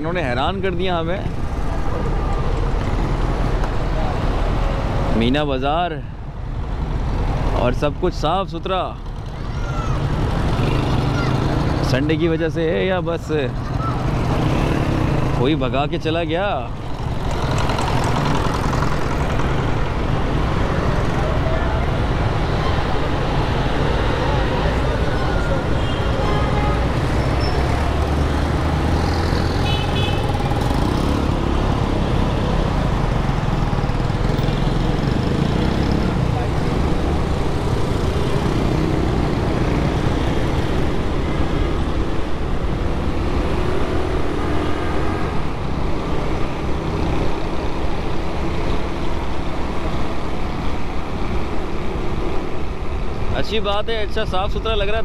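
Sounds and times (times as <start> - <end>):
street traffic noise: 0.0 - 55.0
car horn toot: 29.6 - 30.2.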